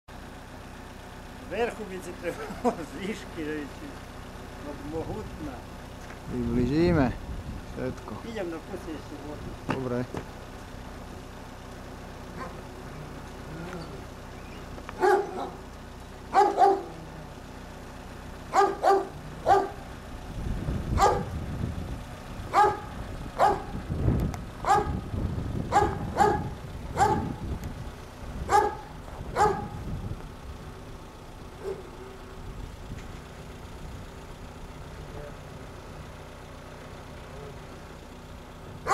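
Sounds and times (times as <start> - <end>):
dog barking: 12.4 - 12.6, 15.0 - 15.6, 16.3 - 17.0, 18.5 - 19.8, 21.0 - 21.3, 22.5 - 23.7, 24.6 - 25.0, 25.7 - 27.3, 28.5 - 29.8, 31.6 - 31.9
low rumble: 19.2 - 35.8.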